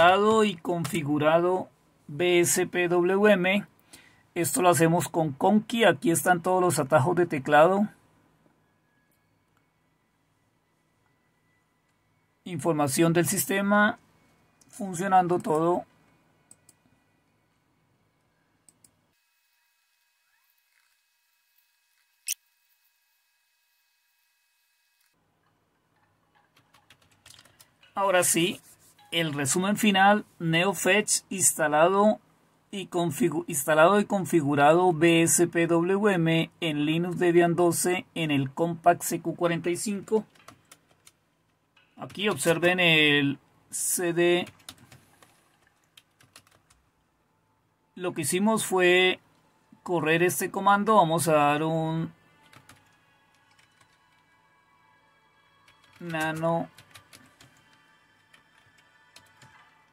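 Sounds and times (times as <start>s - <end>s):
computer mouse clicks: 26.3s - 27.8s.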